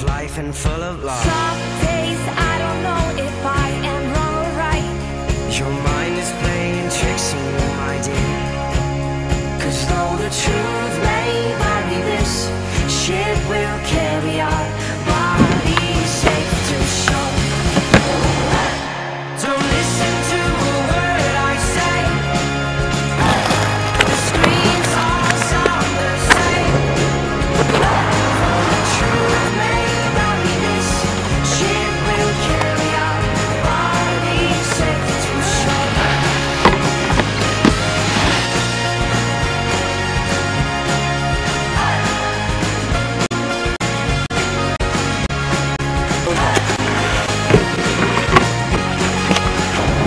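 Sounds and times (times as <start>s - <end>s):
background music: 0.0s - 50.0s
skateboard rolling on concrete: 13.5s - 18.9s, 20.1s - 40.5s, 46.1s - 50.0s
music soundtrack: 23.0s - 40.5s
skimboard knocking on wooden box: 36.6s - 38.4s, 46.4s - 49.7s.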